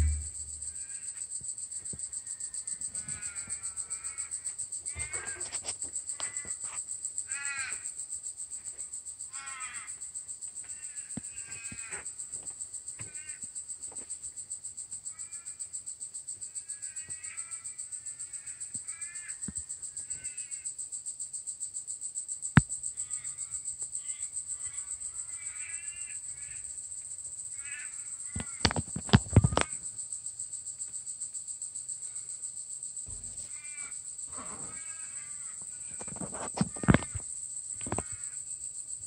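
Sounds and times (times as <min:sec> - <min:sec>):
sharp knocks: 0:00.0 - 0:00.7, 0:33.1 - 0:33.6
high insect drone: 0:00.0 - 0:39.0
crows cawing: 0:07.3 - 0:07.9, 0:09.3 - 0:10.0, 0:27.6 - 0:28.8, 0:33.1 - 0:37.2.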